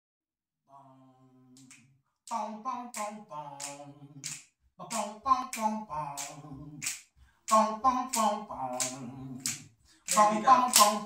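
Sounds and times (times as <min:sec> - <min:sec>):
finger snaps: 0:01.6 - 0:11.0.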